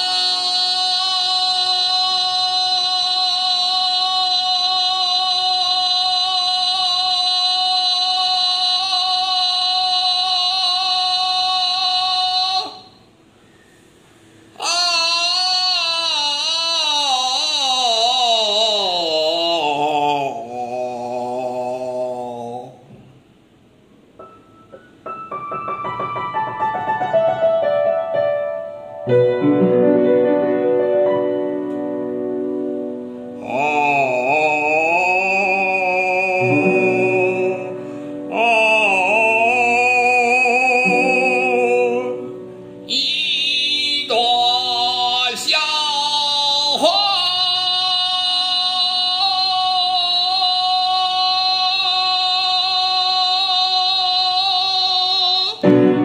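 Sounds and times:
man singing long held note: 0.0s - 13.1s, 14.5s - 22.9s, 33.3s - 56.0s.

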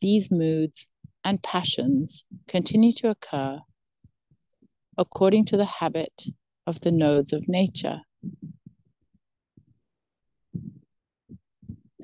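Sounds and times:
faint muffled low thumps: 3.6s - 12.0s.

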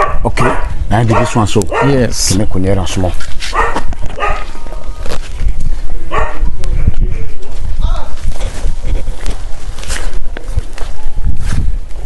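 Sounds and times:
dog barking: 0.0s - 2.1s, 3.5s - 4.6s, 6.1s - 6.4s.

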